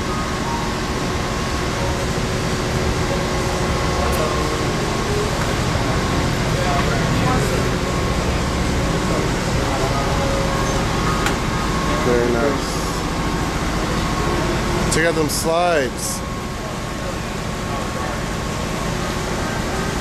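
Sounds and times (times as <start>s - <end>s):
distant voices: 0.4s - 20.0s.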